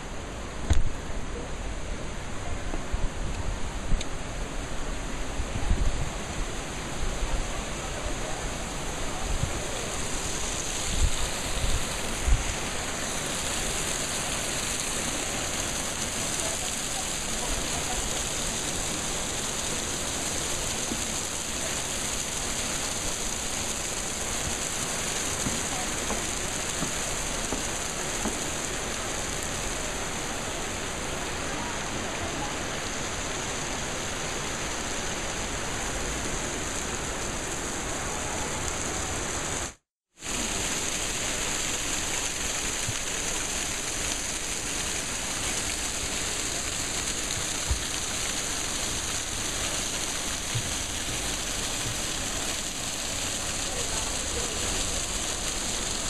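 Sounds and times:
water running and splashing: 2.1s - 56.0s.

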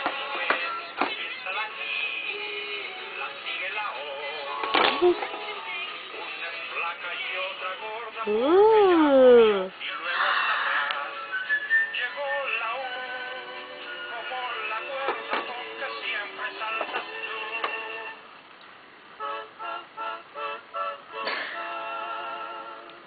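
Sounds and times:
synthesized singing voice: 0.0s - 18.2s, 19.5s - 23.0s.

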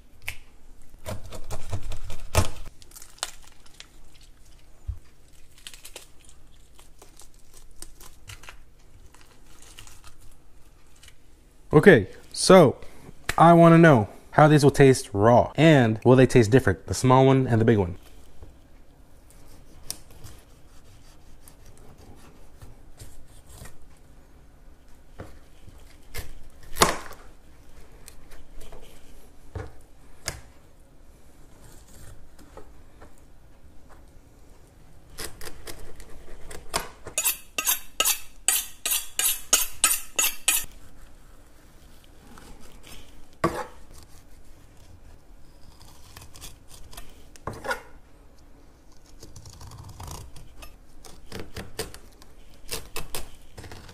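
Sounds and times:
knife on plastic cutting board: 37.2s - 40.8s.

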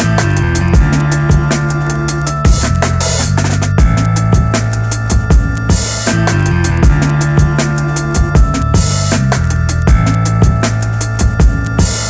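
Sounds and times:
instrumental hip-hop beat: 0.0s - 12.0s.

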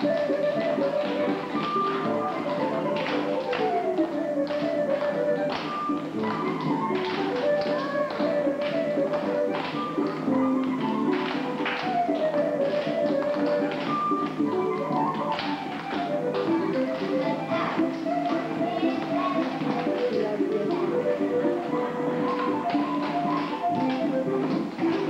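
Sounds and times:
dance music playing: 0.0s - 25.0s
shoes tapping on wooden floor: 0.0s - 25.0s
children clapping: 0.1s - 20.9s, 22.2s - 25.0s.

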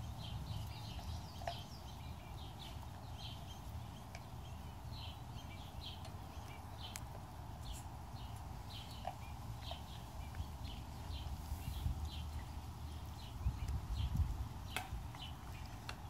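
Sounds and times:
low outdoor rumble: 0.0s - 16.0s
small bird chirping: 0.0s - 16.0s.

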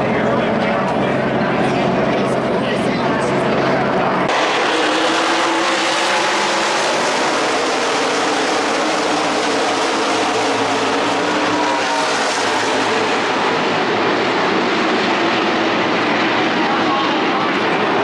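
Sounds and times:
race car engines passing: 0.0s - 18.0s.

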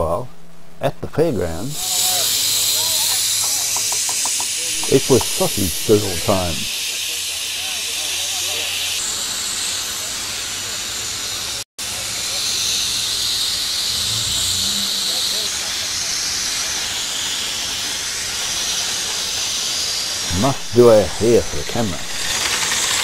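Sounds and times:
steady hiss: 1.1s - 23.0s.

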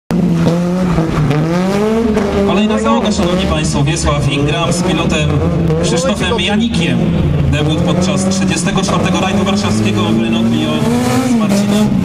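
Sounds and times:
car engine at high revs: 0.1s - 12.0s.

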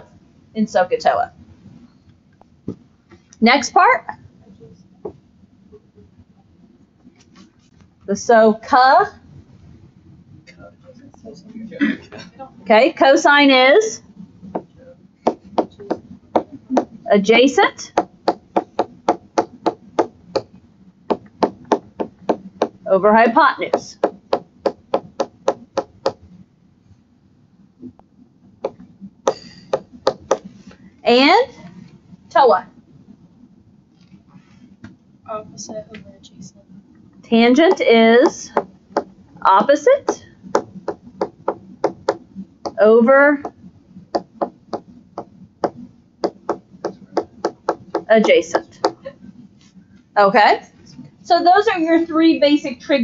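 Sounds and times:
stylus tapping on touchscreen: 28.6s - 30.6s, 37.6s - 39.1s, 40.0s - 42.8s, 43.4s - 49.1s
stylus tapping on glass screen: 43.4s - 49.1s.

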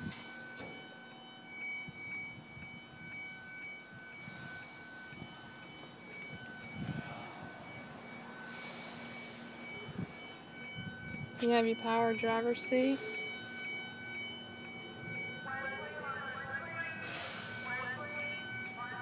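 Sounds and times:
car warning chime beeps: 0.0s - 19.0s.

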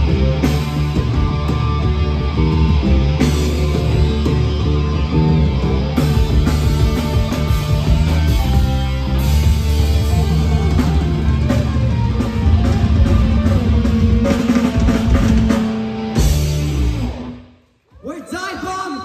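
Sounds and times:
heavy metal band playing live: 0.0s - 17.6s.

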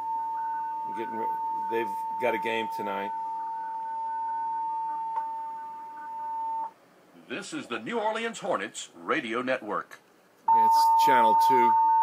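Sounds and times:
fainter higher tone: 0.0s - 6.7s
steady electronic tone: 0.0s - 6.8s.

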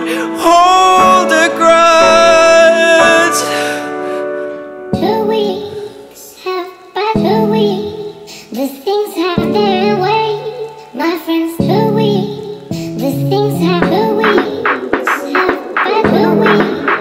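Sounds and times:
high solo singing voice: 0.0s - 3.8s, 5.0s - 17.0s.

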